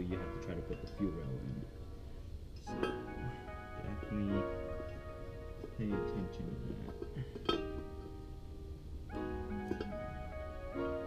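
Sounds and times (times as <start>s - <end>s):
plucked string chords: 0.0s - 11.0s.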